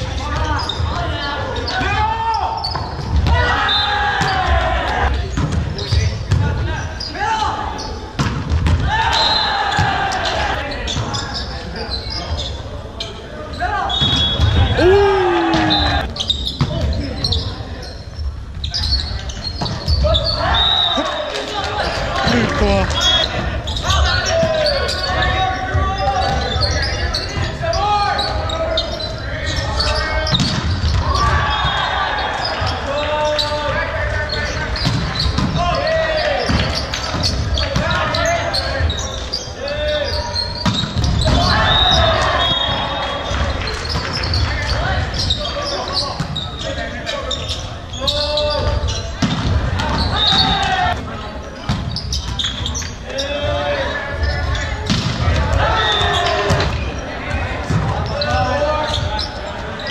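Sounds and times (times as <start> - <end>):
people shouting short calls: 14.6 - 16.1.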